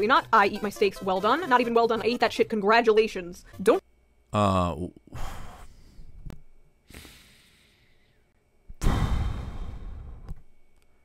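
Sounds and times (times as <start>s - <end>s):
man exhaling breathily: 6.9s - 8.2s, 8.8s - 10.3s.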